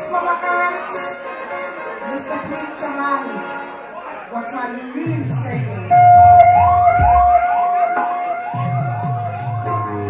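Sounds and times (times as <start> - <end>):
bass-heavy sound-system music: 4.9 - 10.0
dub siren whooping: 5.9 - 10.0.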